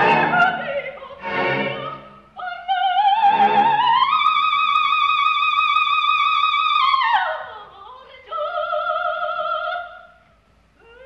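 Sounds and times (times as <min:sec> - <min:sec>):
operatic soprano singing: 0:00.0 - 0:10.1, 0:10.8 - 0:11.0.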